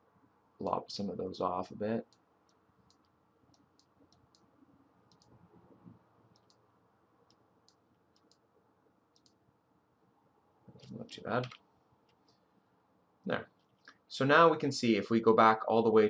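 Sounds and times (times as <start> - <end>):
faint computer mouse clicks: 5.1 - 5.4, 6.3 - 6.6, 7.3 - 8.4, 9.2 - 9.4.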